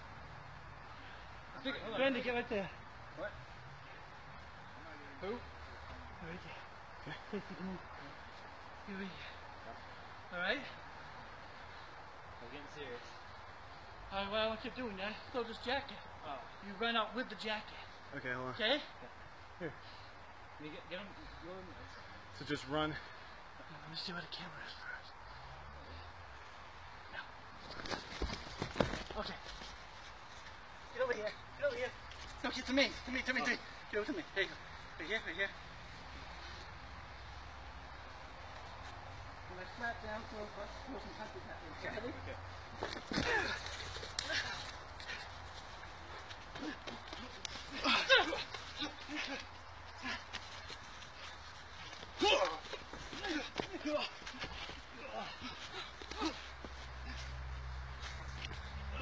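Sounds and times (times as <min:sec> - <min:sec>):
people shouting and grunting: 0:42.8 - 0:45.4, 0:46.1 - 0:57.5.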